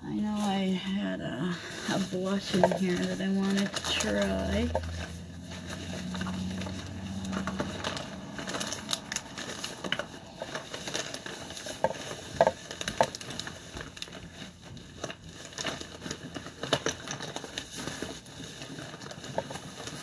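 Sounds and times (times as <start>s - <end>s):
rustling: 0.2s - 20.0s.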